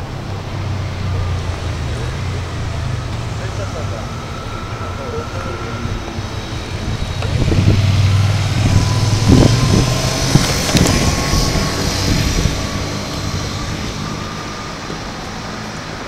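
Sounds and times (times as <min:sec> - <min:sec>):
vehicle engine hum: 0:00.0 - 0:16.0.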